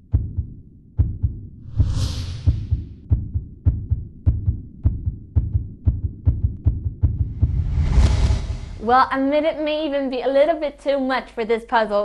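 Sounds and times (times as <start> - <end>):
heartbeat-like double thumps: 0.0 - 9.0
rising whoosh: 1.6 - 2.6, 7.2 - 9.1.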